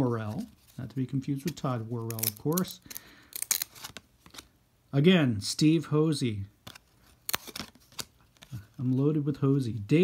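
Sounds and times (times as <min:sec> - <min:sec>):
cards sliding and flicking: 0:03.3 - 0:04.5, 0:06.6 - 0:08.6.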